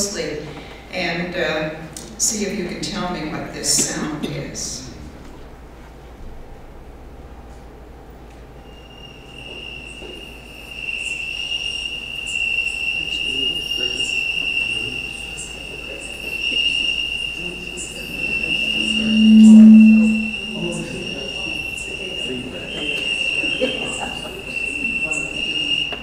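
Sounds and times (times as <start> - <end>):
loud low hum: 18.2 - 21.1.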